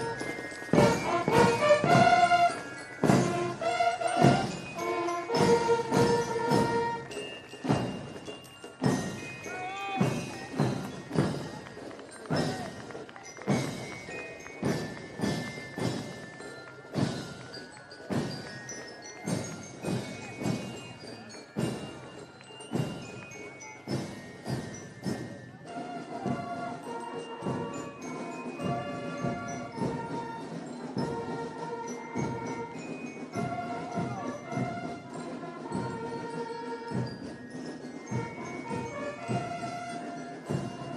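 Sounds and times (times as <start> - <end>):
marching drums beating cadence: 0.0 - 40.9
brass horns playing melody: 0.8 - 7.1.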